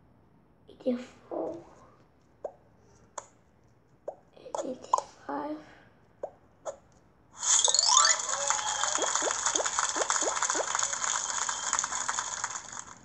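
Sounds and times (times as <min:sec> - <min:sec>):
short falling blips: 0:07.4 - 0:09.6
sparkling fizz: 0:07.4 - 0:13.0.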